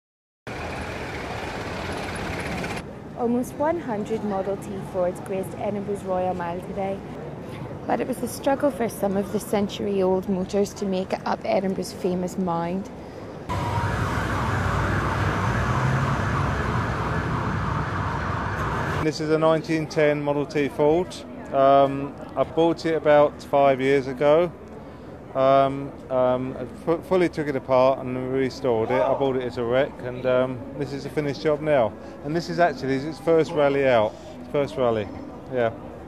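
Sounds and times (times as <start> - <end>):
street traffic noise: 0.5 - 36.0
car engine driving past: 13.5 - 19.1.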